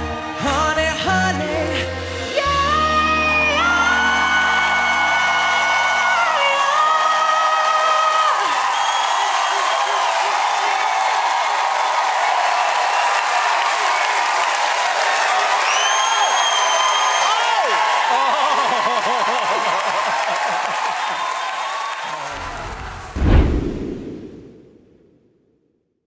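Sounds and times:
audience cheering and applauding: 0.0s - 1.4s, 2.6s - 23.2s
high whoops: 3.3s - 23.1s.

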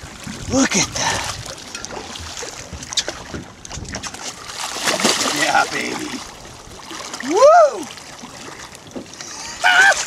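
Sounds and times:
wind buffeting microphone: 0.0s - 7.0s
water sloshing and splashing: 0.0s - 10.0s.

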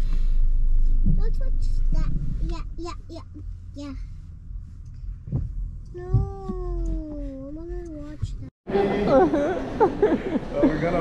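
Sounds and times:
low thump: 0.4s - 2.5s, 5.0s - 7.0s.

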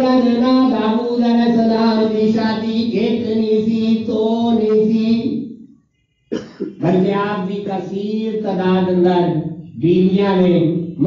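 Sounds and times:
man chanting: 0.0s - 5.4s, 6.6s - 11.0s
throat clearing: 6.3s - 6.9s
man coughing: 6.3s - 7.0s.

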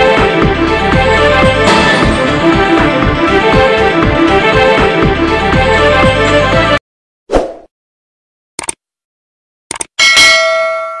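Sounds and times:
double clicks: 8.6s - 8.8s, 9.7s - 10.0s
bell ding: 10.0s - 11.0s.

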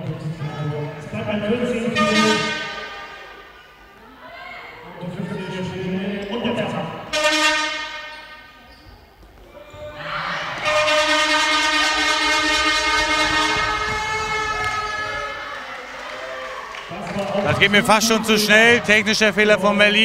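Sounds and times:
horn blasts: 1.7s - 3.3s, 7.0s - 8.6s, 10.6s - 15.4s.

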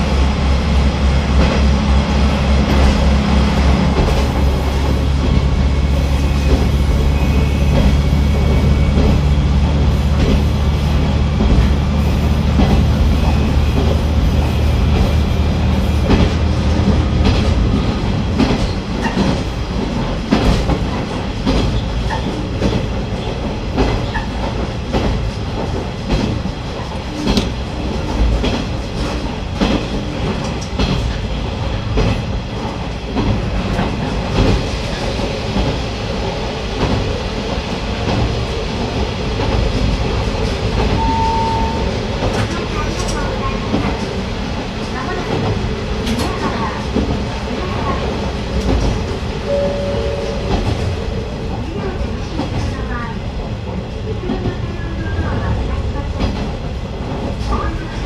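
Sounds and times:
diesel railcar engine droning: 0.0s - 58.0s
train wheels clickety-clack: 0.0s - 58.0s.

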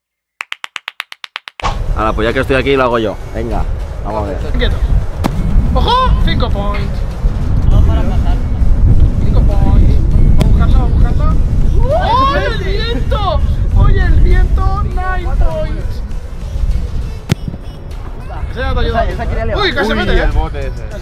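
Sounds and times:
music: 1.6s - 21.0s
wind buffeting microphone: 3.4s - 21.0s
voices: 9.1s - 21.0s.

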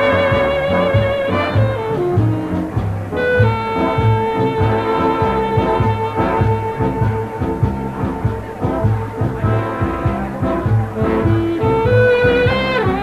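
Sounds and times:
big band horn section: 0.0s - 13.0s
steady bass beat: 0.0s - 13.0s.

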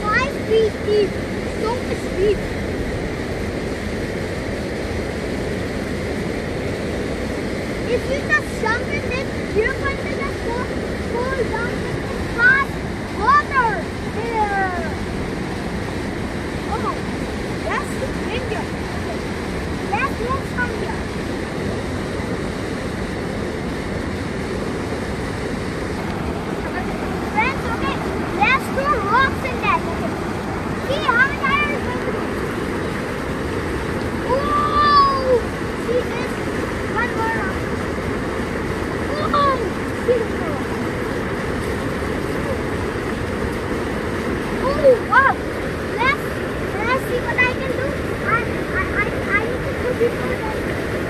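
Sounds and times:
river rapids rushing: 0.0s - 51.0s.

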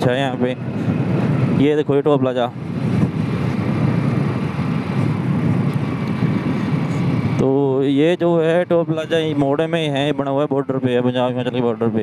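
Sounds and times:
wind rushing on microphone: 0.0s - 12.0s.

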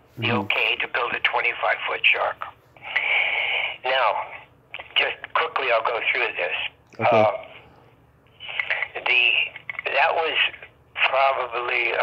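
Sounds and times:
man speaking over phone line: 0.2s - 2.5s, 3.8s - 7.6s, 8.9s - 12.0s.

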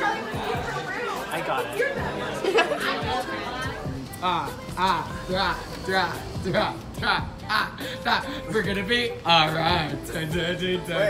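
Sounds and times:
background music: 0.0s - 11.0s
voices talking over one another: 0.0s - 11.0s.

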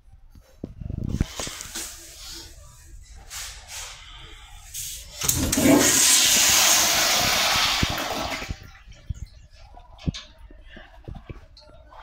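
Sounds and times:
toilet flushing: 5.1s - 8.7s.

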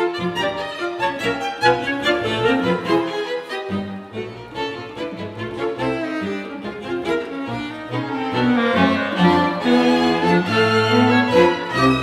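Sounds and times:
string ensemble playing: 0.0s - 12.0s.

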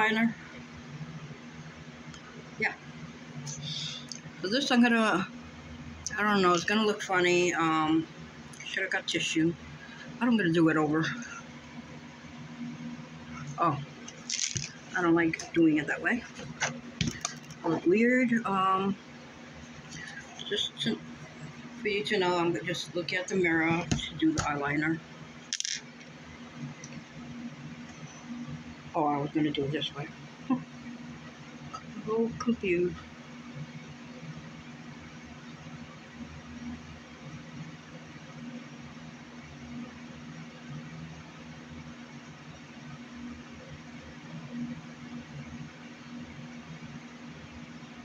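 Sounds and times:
faint low hum: 0.0s - 48.0s.

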